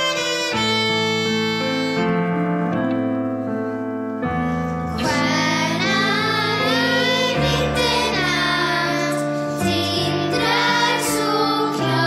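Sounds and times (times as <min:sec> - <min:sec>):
keyboard accompaniment: 0:00.0 - 0:12.0
children singing together: 0:05.0 - 0:12.0.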